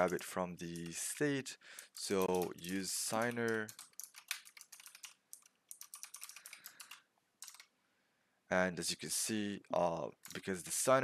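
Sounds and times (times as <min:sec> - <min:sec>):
typing on computer keyboard: 0:00.0 - 0:01.0, 0:01.8 - 0:07.7, 0:10.2 - 0:10.5.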